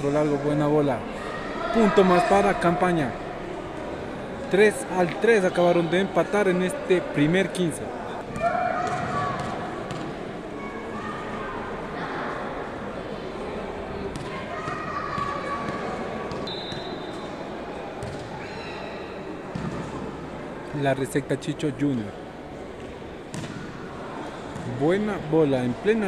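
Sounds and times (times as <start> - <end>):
distant people talking: 0.0 - 26.0
ball bouncing on wooden court: 8.4 - 10.1, 23.3 - 23.6.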